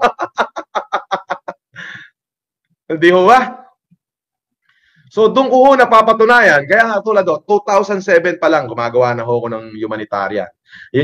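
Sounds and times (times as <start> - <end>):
man laughing hard: 0.0 - 2.1.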